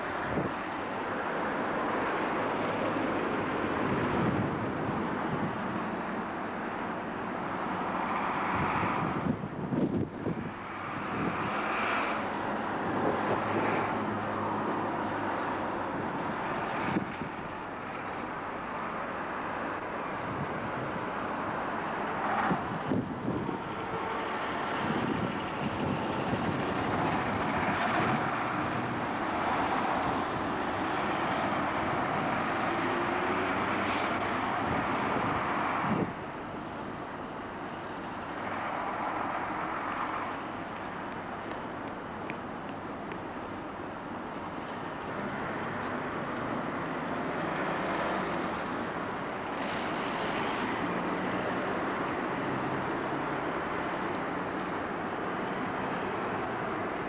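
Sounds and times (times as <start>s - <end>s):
street traffic: 0.0s - 57.0s
wind rumbling on microphone: 0.1s - 0.6s, 3.7s - 5.8s, 8.4s - 14.2s, 15.3s - 17.6s, 20.2s - 21.2s, 22.1s - 36.2s
diesel bus pulling past: 10.0s - 42.2s, 43.6s - 57.0s.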